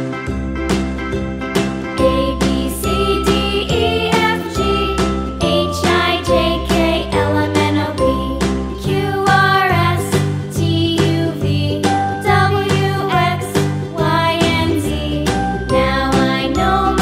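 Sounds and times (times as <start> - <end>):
jingly children's music with beat: 0.0 - 17.0.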